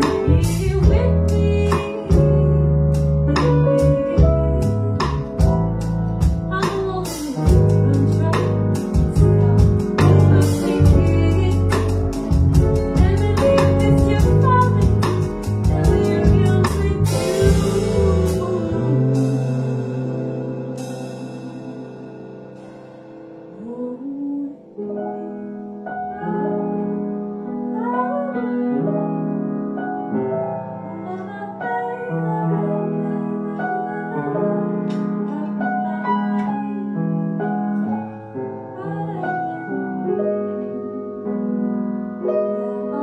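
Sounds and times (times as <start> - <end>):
person singing: 0.0 - 5.5, 6.5 - 22.1
small band playing live: 0.0 - 23.8
grand piano chords: 0.0 - 43.0.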